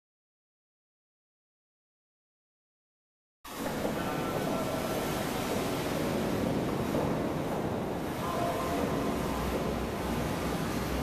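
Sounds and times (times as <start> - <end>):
boat engine rumble: 3.5 - 11.0
water wash: 3.5 - 11.0.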